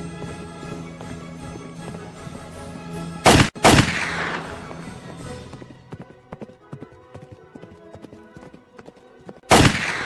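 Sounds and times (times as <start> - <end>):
horses galloping: 0.0 - 2.8, 4.4 - 9.5
background music: 0.0 - 10.0.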